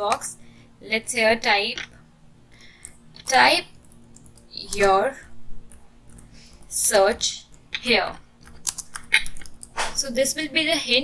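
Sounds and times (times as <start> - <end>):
keyboard typing: 2.8 - 10.0.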